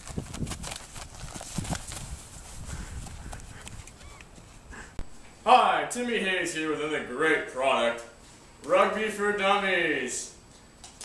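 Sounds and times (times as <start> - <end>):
players running on grass: 0.0 - 4.6.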